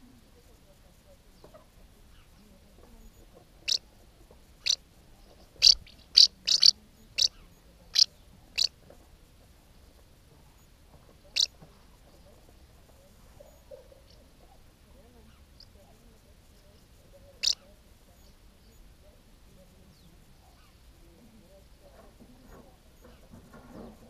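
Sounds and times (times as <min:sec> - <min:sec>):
house martins chirping: 0:01.4 - 0:08.8, 0:11.3 - 0:18.9.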